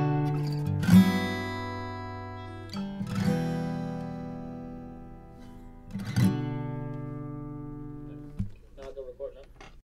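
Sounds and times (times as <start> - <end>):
acoustic guitar chord ringing: 0.0 - 8.5
person speaking: 8.1 - 9.8.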